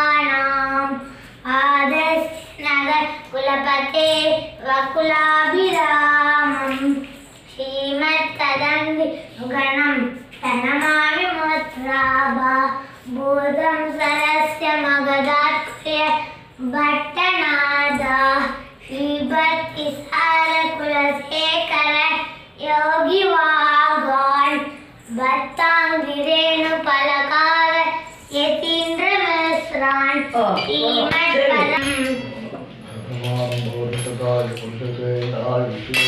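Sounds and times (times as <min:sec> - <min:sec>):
child singing a chant: 0:00.0 - 0:32.1.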